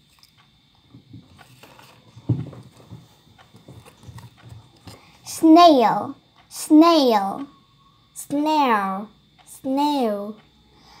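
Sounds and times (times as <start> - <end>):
small knocks: 0.9 - 5.0
cards being handled thumps: 1.0 - 5.0.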